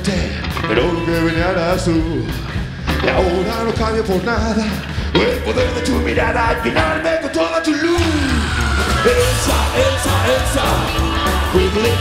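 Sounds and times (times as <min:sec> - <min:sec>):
man singing: 0:00.0 - 0:12.0
rock and roll band playing: 0:00.0 - 0:12.0.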